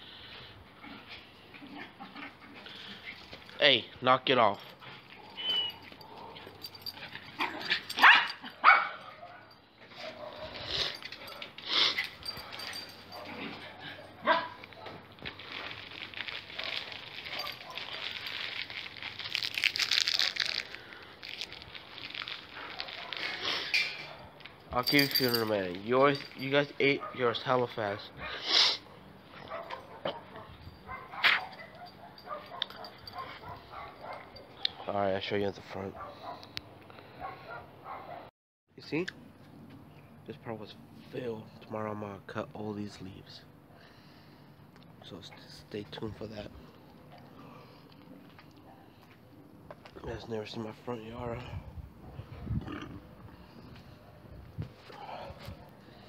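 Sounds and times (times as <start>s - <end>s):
dogs play-fighting: 0.6s - 3.6s, 4.6s - 15.4s, 16.0s - 18.6s, 22.4s - 25.4s, 29.0s - 34.9s
dogs barking: 5.1s - 15.1s, 16.5s - 18.2s, 22.6s - 24.5s, 26.8s - 35.0s, 35.9s - 38.3s
dog yipping and whimpering: 5.2s - 6.0s.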